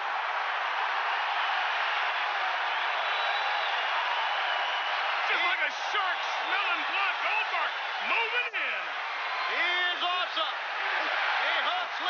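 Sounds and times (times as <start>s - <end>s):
arena crowd cheering and applauding: 0.0s - 12.0s.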